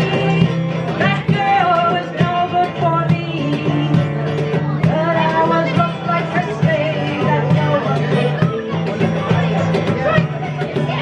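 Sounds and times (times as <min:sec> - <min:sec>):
woman singing: 0:00.0 - 0:09.4
hand-played cajon percussion: 0:00.0 - 0:11.0
strummed acoustic guitar: 0:00.0 - 0:11.0.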